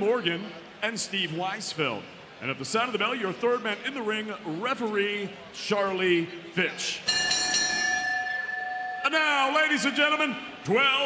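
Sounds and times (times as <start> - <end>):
boxing ring bell ringing: 7.1 - 10.6.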